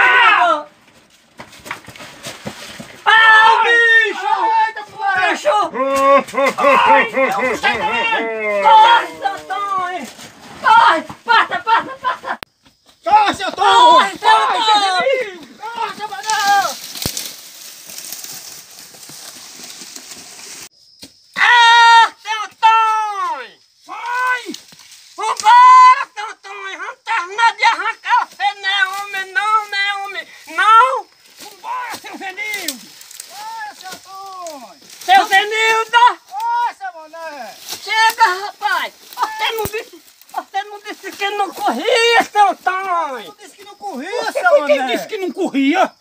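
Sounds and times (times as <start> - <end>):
men yelling and screaming: 0.0 - 0.8, 2.7 - 18.2, 21.3 - 46.0.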